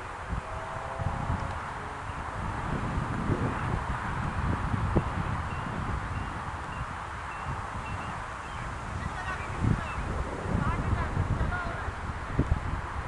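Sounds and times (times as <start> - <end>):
wind gusting on microphone: 0.0 - 13.0.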